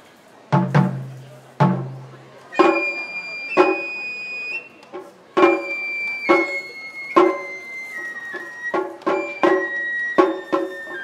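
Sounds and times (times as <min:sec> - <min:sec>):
taiko drum strikes: 0:00.5 - 0:03.9, 0:04.9 - 0:07.6, 0:08.4 - 0:11.0
bamboo flute high notes: 0:02.5 - 0:11.0.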